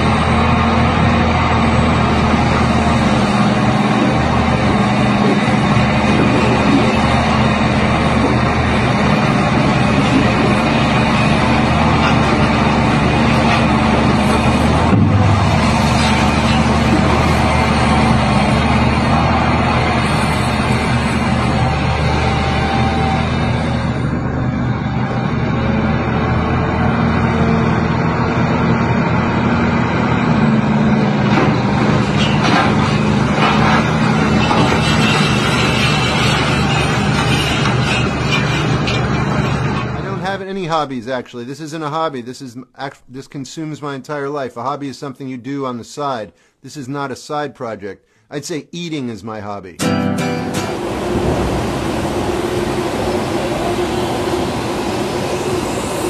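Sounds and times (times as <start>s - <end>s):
heavy diesel excavator engines: 0.0s - 41.0s, 49.8s - 56.0s.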